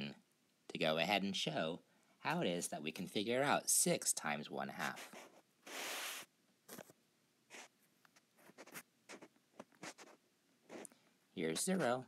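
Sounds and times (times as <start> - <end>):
stylus taps and scratches: 7.5 - 10.9.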